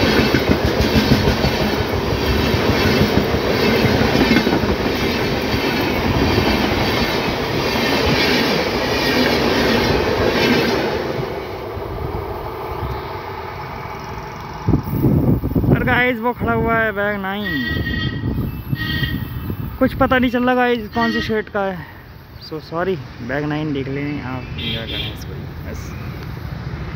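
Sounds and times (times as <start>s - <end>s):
wheels clattering over rails: 0.0s - 11.4s
train passing at speed: 0.0s - 26.9s.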